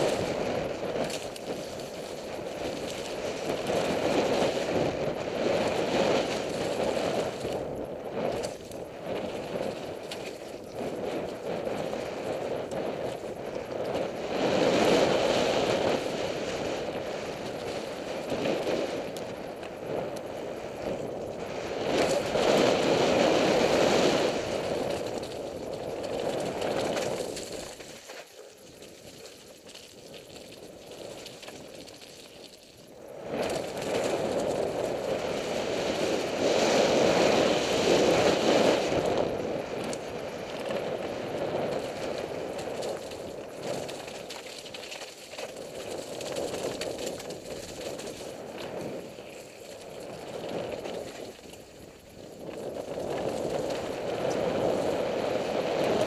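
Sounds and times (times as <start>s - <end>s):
bike rattling: 0.0s - 56.0s
tyres on rough dirt trail: 0.0s - 56.0s
wind on microphone: 0.0s - 56.0s.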